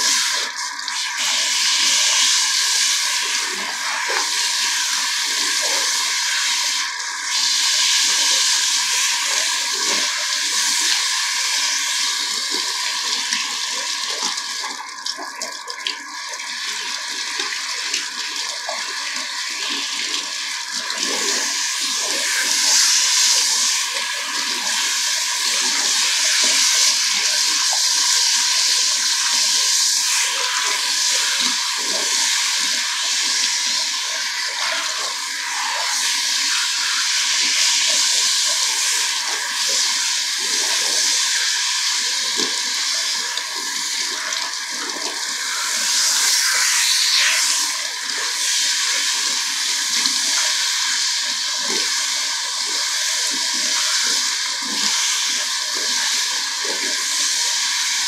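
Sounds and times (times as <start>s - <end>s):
water spraying through hair: 0.0s - 58.0s.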